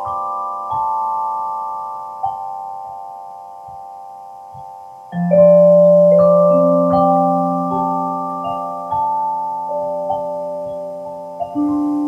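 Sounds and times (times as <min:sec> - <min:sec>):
ringing vibraphone chord: 0:00.0 - 0:12.0.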